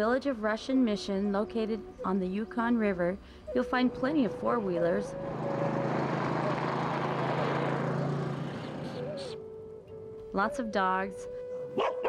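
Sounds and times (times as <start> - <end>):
atv engine driving past: 4.3 - 9.8.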